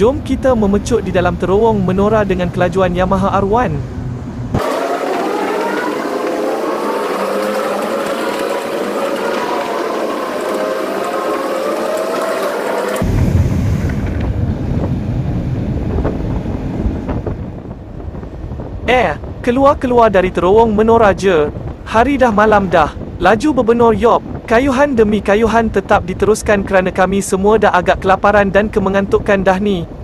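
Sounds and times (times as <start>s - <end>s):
wind and road noise: 0.0s - 30.0s.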